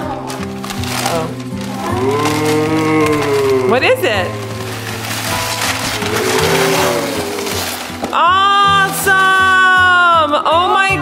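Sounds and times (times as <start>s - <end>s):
wrapping paper tearing and rustling: 0.0s - 10.0s
background music: 0.0s - 11.0s.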